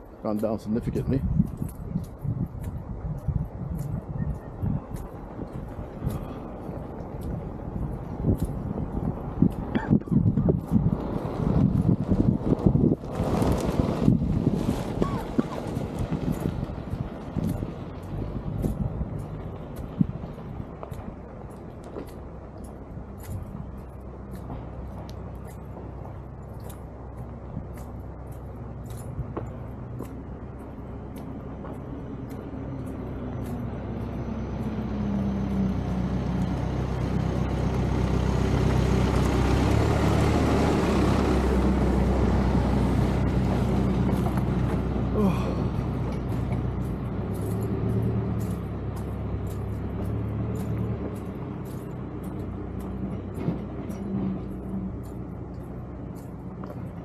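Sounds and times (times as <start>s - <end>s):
footsteps on road: 0.0s - 57.0s
vehicle passing by: 4.6s - 21.4s, 28.6s - 57.0s.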